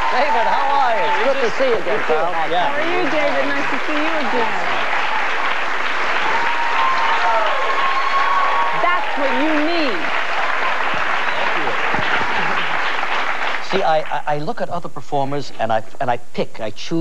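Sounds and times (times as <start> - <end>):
studio audience applauding: 0.0 - 15.7.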